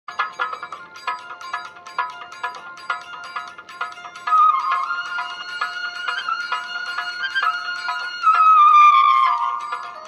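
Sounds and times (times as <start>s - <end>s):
bright ringtone-like jingle: 0.1s - 10.0s.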